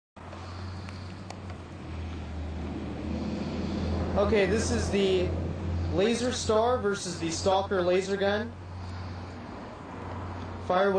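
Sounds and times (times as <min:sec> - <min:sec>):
car engine humming: 0:00.2 - 0:10.8.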